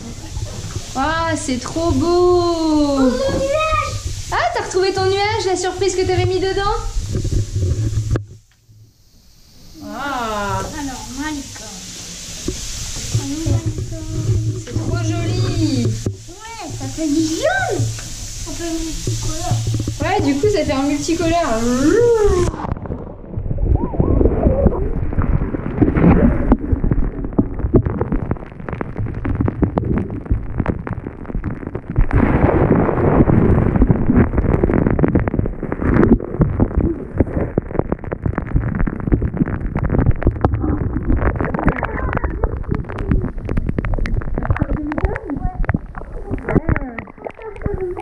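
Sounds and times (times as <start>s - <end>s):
underwater knocks and bumps: 3.2s - 8.9s, 12.4s - 16.3s, 17.6s - 48.0s
muffled water sloshing underwater: 5.1s - 9.7s, 17.7s - 48.0s.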